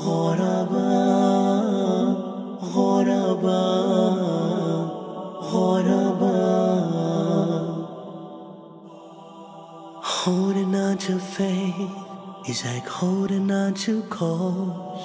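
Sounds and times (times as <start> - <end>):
voices chanting wordlessly: 0.0 - 15.0.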